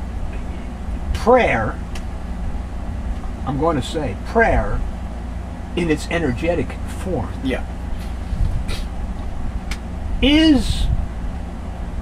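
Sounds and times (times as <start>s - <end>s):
low rumble and hum: 0.0s - 12.0s.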